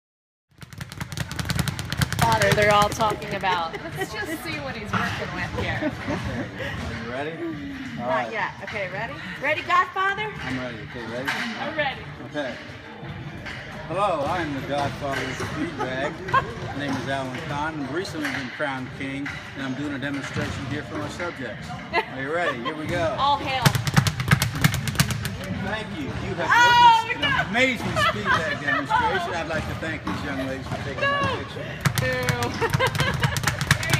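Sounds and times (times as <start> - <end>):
speed bag rattling knocks: 0.6 - 3.5, 23.6 - 25.4.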